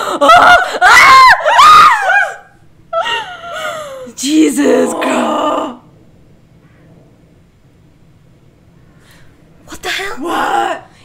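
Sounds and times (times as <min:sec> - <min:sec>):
women screaming and squealing: 0:00.2 - 0:05.8.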